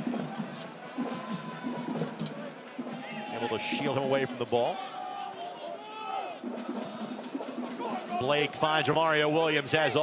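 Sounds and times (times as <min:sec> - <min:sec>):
music: 0:00.0 - 0:10.0
stadium crowd noise: 0:00.0 - 0:10.0.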